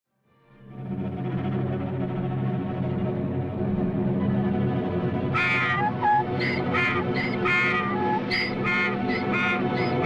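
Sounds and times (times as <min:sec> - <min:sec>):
low orchestral film score: 0:00.3 - 0:10.0
donkey braying: 0:05.4 - 0:10.0.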